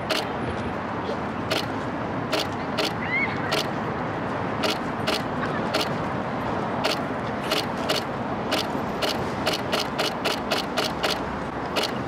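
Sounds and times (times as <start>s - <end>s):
camera shutters clicking: 0.1s - 0.3s, 2.3s - 3.7s, 4.6s - 5.9s, 6.8s - 12.0s.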